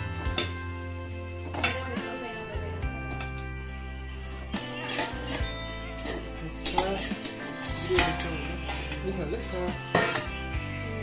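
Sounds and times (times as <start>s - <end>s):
metal lid clinking on pan: 0.2s - 0.6s, 1.4s - 2.0s, 4.8s - 9.0s, 9.9s - 10.5s.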